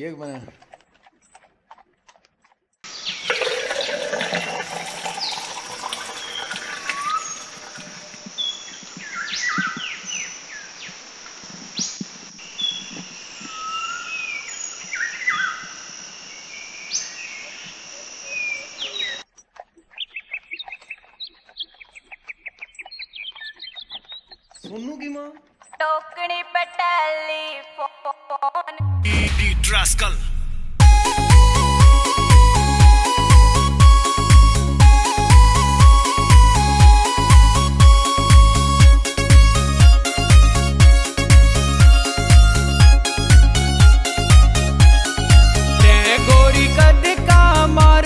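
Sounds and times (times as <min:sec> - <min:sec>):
birds chirping and whistling: 0:05.1 - 0:11.0, 0:11.8 - 0:19.2, 0:19.9 - 0:25.0.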